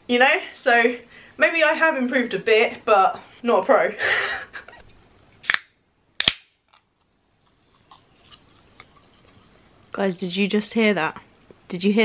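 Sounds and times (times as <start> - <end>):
can ring-pull cracking open: 5.4 - 6.9.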